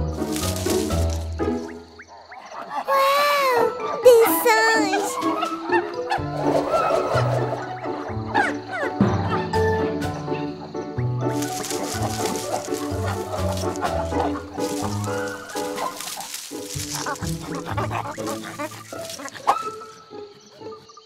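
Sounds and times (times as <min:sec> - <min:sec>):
bouncy cartoon music: 0:00.0 - 0:02.0, 0:03.2 - 0:21.0.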